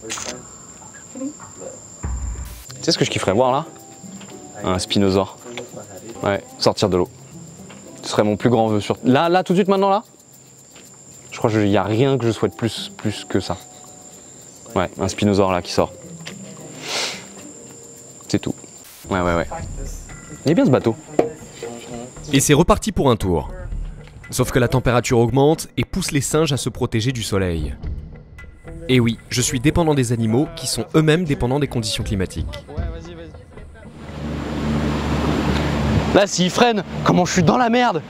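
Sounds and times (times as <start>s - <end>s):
insects droning: 0.0s - 38.0s
soft rush of hiss: 9.8s - 20.4s
boat motor running: 33.9s - 37.2s
water noise: 33.9s - 37.4s.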